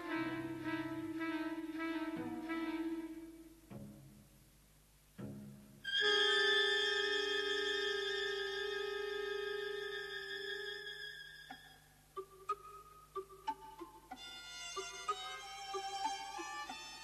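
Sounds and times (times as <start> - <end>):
string music: 0.0 - 4.5, 5.1 - 17.0.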